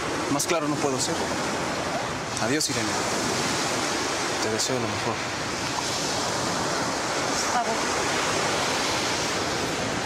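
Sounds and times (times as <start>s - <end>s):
ocean surf: 0.0s - 10.0s.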